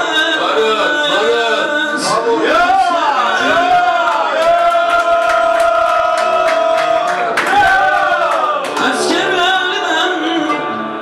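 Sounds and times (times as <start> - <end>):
man singing long high note: 0.0 - 4.2, 8.8 - 11.0
people clapping in time: 3.8 - 9.4.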